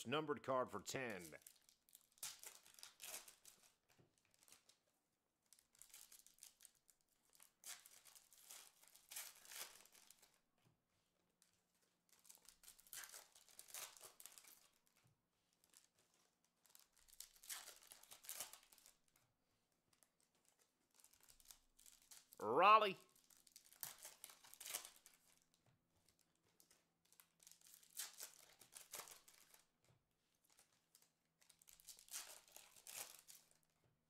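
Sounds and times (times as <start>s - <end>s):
foil wrappers tearing and crinkling: 1.2s - 4.8s, 5.5s - 10.4s, 12.1s - 14.8s, 16.6s - 19.0s, 20.5s - 22.4s, 23.2s - 25.4s, 26.6s - 29.6s, 30.5s - 33.6s.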